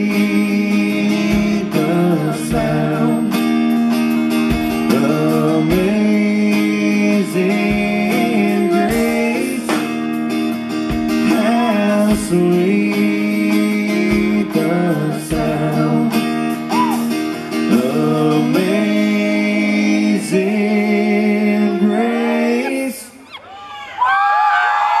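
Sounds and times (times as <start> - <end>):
man singing: 0.0 - 3.8, 4.5 - 10.2, 11.1 - 23.2
acoustic guitar: 0.0 - 23.2
high sliding whoops: 16.7 - 17.1, 23.2 - 25.0.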